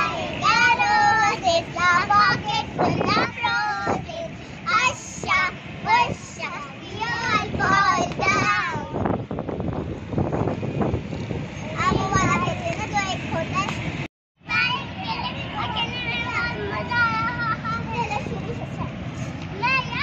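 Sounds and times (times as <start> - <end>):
girls singing together: 0.0 - 9.0.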